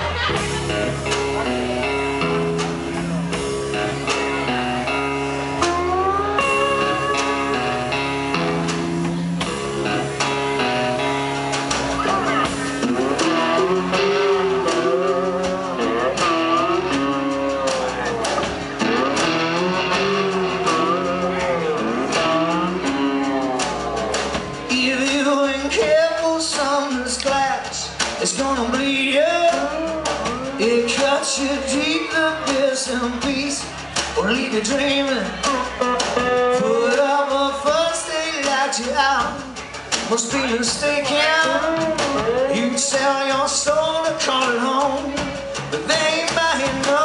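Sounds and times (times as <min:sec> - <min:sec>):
bending lead guitar melody: 0:00.0 - 0:26.2, 0:28.1 - 0:47.0
live band playing slow blues: 0:00.0 - 0:47.0.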